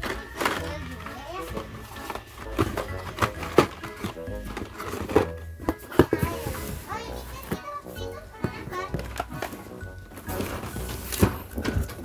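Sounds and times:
children chattering: 0:00.0 - 0:02.2, 0:05.8 - 0:09.7
music: 0:00.0 - 0:12.0.

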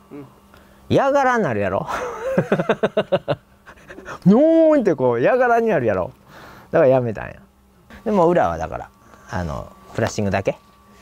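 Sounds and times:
man laughing: 0:01.8 - 0:04.2.

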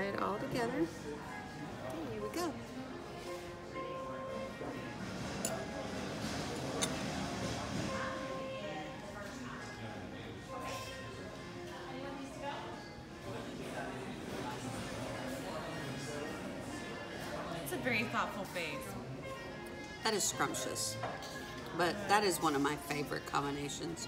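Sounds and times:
background music: 0:00.0 - 0:24.0
murmur of diners chatter: 0:00.0 - 0:24.0
cutlery clinking on dishes: 0:05.1 - 0:08.2.

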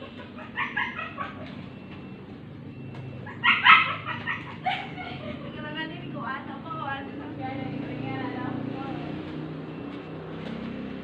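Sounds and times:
dog barking: 0:03.3 - 0:04.4.

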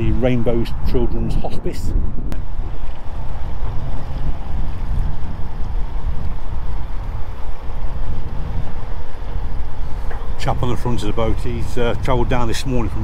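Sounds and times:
outboard motor drone: 0:00.0 - 0:13.0
wind rumble on microphone: 0:00.0 - 0:13.0.

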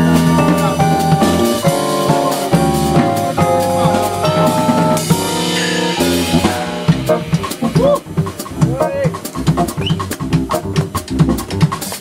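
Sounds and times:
drum kit playing: 0:00.0 - 0:12.0
electric bass: 0:00.0 - 0:12.0.

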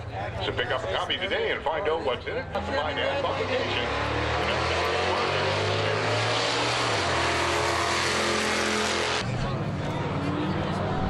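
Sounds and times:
racing engines: 0:00.0 - 0:11.0.

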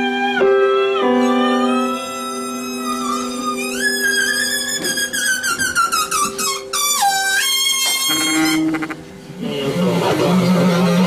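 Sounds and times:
noisy busy texture: 0:08.1 - 0:11.0.

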